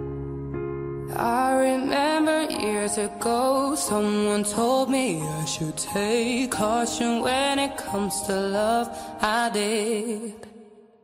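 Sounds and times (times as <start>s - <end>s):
person singing: 1.0s - 11.0s.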